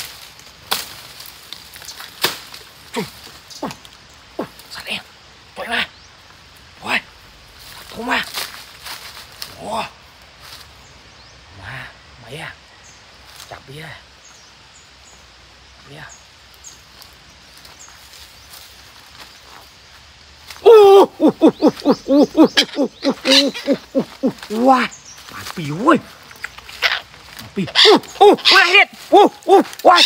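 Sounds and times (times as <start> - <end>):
forest background: 0.0 - 30.0
man exclaiming: 20.6 - 26.1, 27.4 - 30.0.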